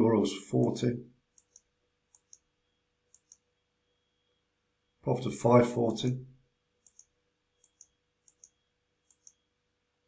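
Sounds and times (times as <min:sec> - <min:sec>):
computer mouse clicking: 0:00.6 - 0:02.5, 0:03.1 - 0:03.5, 0:06.8 - 0:09.4.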